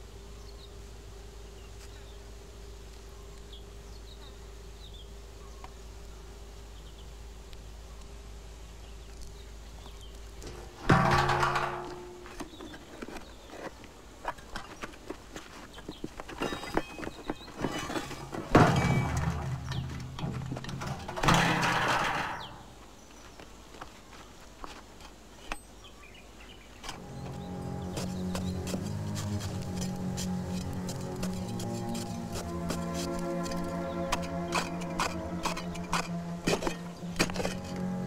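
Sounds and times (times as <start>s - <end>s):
small clicks and scrapes of earth: 8.9s - 18.6s, 22.8s - 25.7s, 26.7s - 38.0s.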